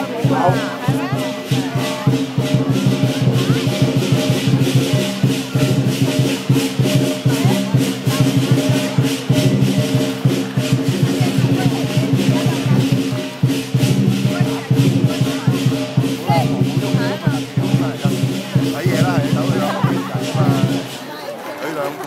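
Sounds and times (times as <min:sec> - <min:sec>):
cymbals crashing: 0:00.0 - 0:21.1
drum beat: 0:00.0 - 0:21.2.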